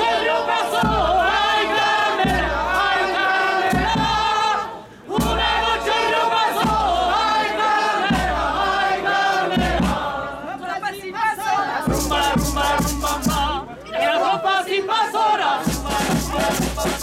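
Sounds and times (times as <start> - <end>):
choir singing: 0.0 - 17.0.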